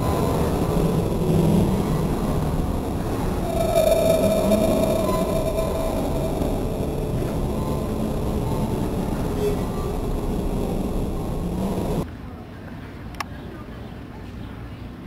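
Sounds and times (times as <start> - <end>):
carousel rumbling: 0.0 - 12.0
high steady tone: 0.0 - 12.0.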